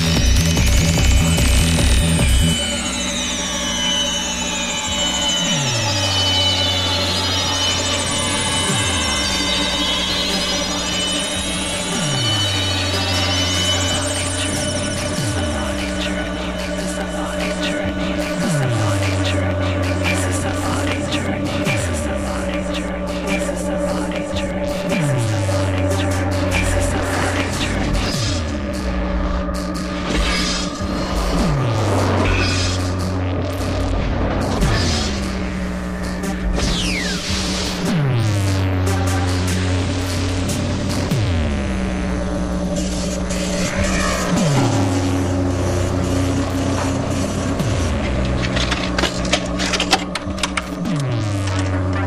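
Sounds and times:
electronic dance music: 0.0 - 52.0
high sweeping synth lines: 0.0 - 52.0
deep sliding bass note: 38.1 - 48.5.

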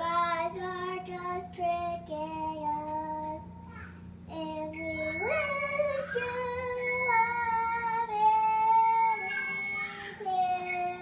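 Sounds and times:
little girl singing: 0.0 - 11.0.

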